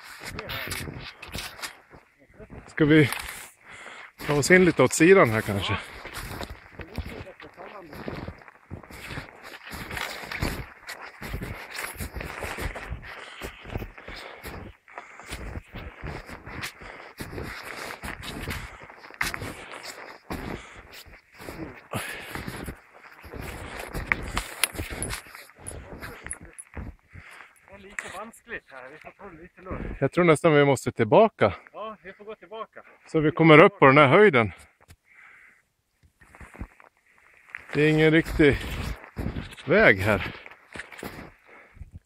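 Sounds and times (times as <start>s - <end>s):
footsteps crunching in snow: 0.0s - 30.0s, 36.2s - 41.7s.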